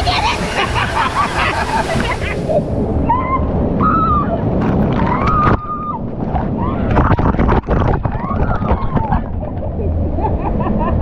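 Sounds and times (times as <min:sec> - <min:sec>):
waterfall pouring and splashing: 0:00.0 - 0:03.0.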